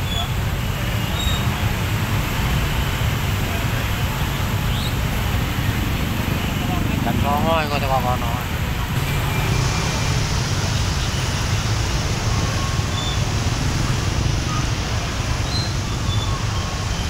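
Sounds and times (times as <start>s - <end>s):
traffic engines rumbling: 0.0s - 17.0s.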